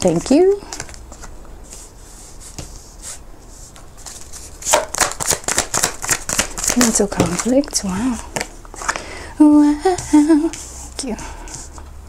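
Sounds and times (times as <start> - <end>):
cards being shuffled: 0.6 - 9.0
sharp card slaps: 4.6 - 7.4.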